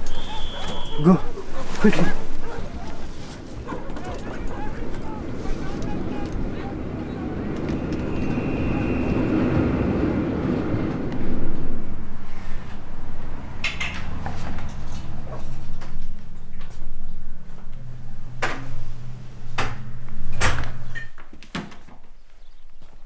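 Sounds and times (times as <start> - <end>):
train rumbling in motion: 0.0 - 21.1.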